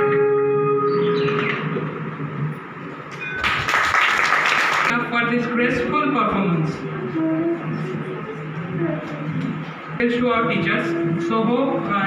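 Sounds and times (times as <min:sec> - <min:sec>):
music with guitar: 0:00.0 - 0:03.3
applause: 0:03.4 - 0:04.9.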